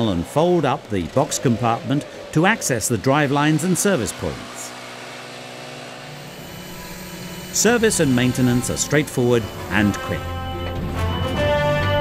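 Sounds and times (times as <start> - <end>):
leaf blower running: 0.0 - 12.0.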